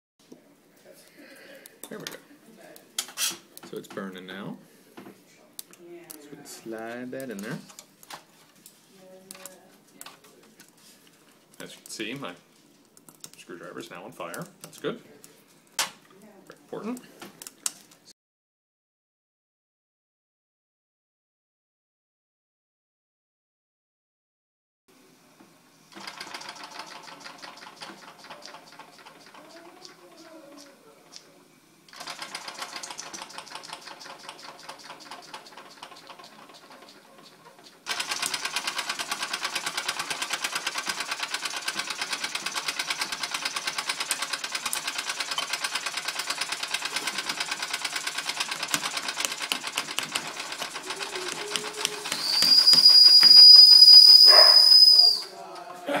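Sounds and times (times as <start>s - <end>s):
toy steam engine chuffing: 25.9s - 30.8s, 31.9s - 55.2s
steam whistle: 52.1s - 55.3s.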